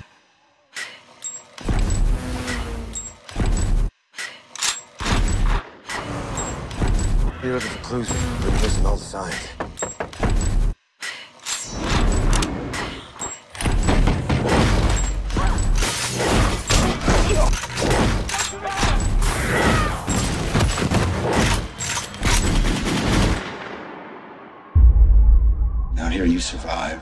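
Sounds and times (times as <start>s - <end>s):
gunfire volleys with heavy impacts: 13.6s - 24.8s.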